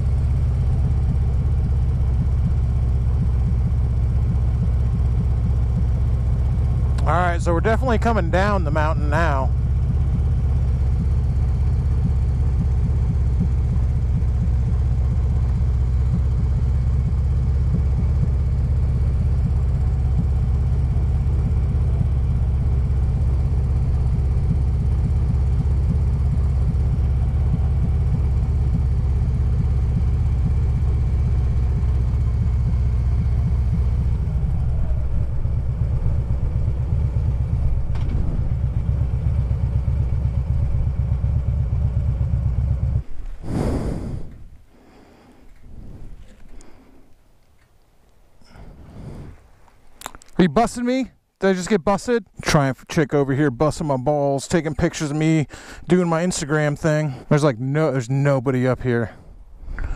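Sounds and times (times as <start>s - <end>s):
motorcycle engine rumbling: 0.0s - 59.9s.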